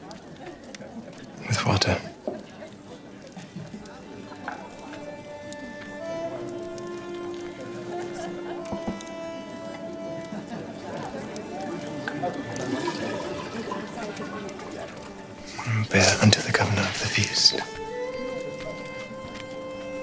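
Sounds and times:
murmur of background voices: 0.0s - 20.0s
soft film score: 3.8s - 20.0s.

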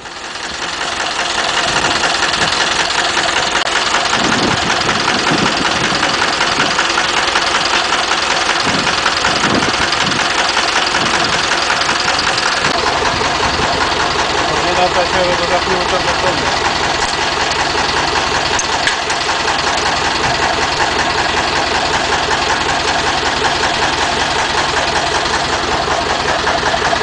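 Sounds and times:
tractor engine idling: 0.0s - 27.0s.

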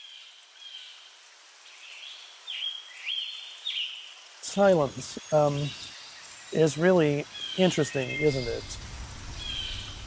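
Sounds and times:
soft outdoor hiss: 0.0s - 10.0s.

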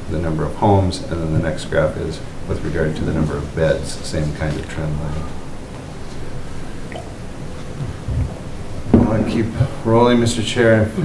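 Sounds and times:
low rumbling handling noise: 0.0s - 10.8s
room hiss: 0.0s - 11.0s
soft thumps: 6.9s - 9.7s.

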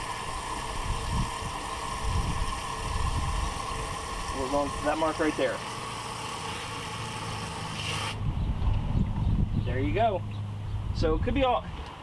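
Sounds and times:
water running into tank: 0.0s - 8.2s.

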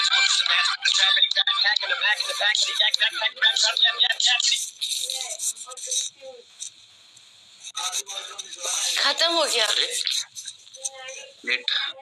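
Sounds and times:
rap music with vocals: 0.0s - 6.2s.

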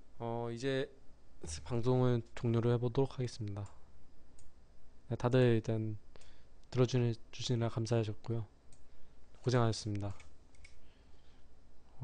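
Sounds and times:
low electrical hum: 0.0s - 12.0s
faint clicks: 8.7s - 8.9s, 9.9s - 10.8s.

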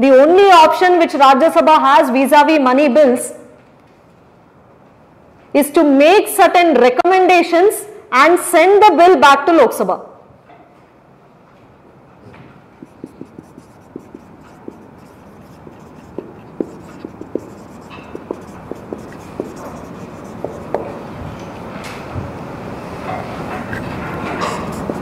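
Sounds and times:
steady background noise: 0.0s - 25.0s
marker squeaking on whiteboard: 12.8s - 21.0s, 23.7s - 25.0s.

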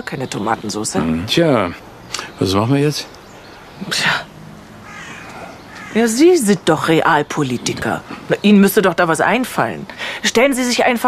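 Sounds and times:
person speaking: 0.9s - 2.9s
faint bird call: 4.8s - 6.1s.

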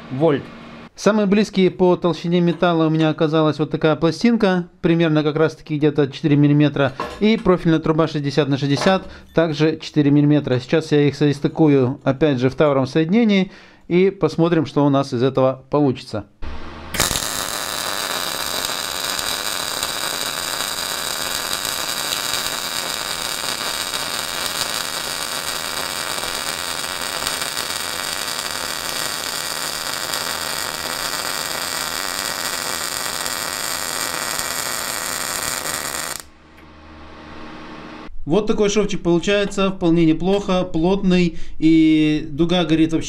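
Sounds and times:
welding arc sizzling: 16.4s - 36.3s.

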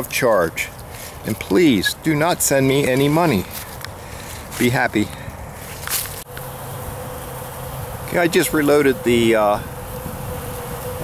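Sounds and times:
bees buzzing: 6.3s - 11.0s.

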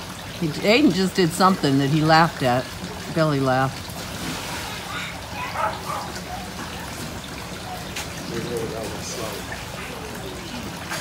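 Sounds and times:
water spraying and falling: 0.0s - 11.0s
faint voices: 4.6s - 11.0s.

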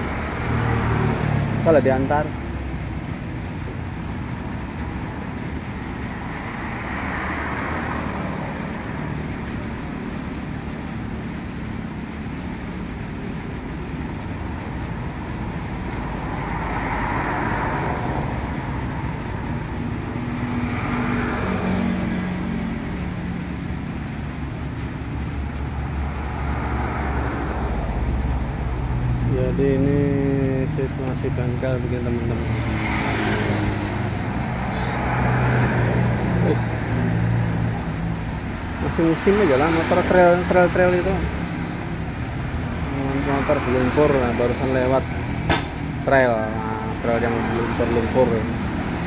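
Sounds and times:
car engine passing: 0.0s - 49.0s
traffic rumble: 0.0s - 49.0s
tyres hissing on wet road: 0.0s - 49.0s.

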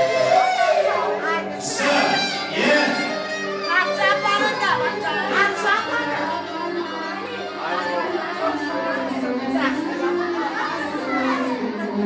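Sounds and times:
party guests chattering: 0.0s - 12.0s.

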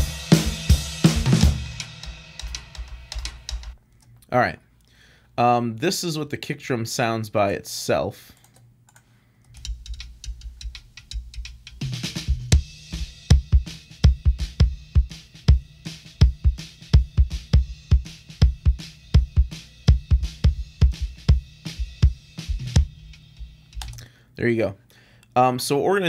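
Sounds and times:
faint snare toms and hi-hat: 0.0s - 3.8s, 9.5s - 23.9s.

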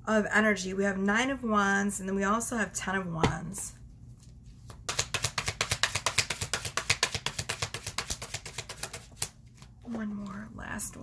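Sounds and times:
cards being shuffled: 4.2s - 10.4s.

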